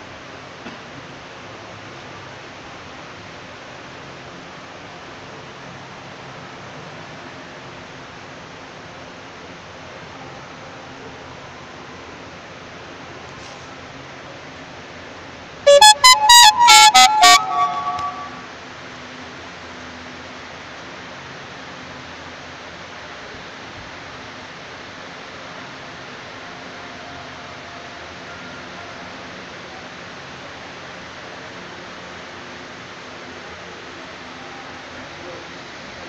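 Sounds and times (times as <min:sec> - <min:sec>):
short melodic tune of struck notes: 0:15.7 - 0:18.5.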